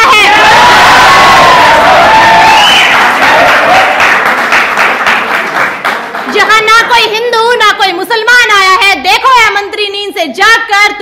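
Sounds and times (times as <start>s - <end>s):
people shouting and cheering: 0.0s - 4.0s
audience clapping: 1.4s - 7.0s.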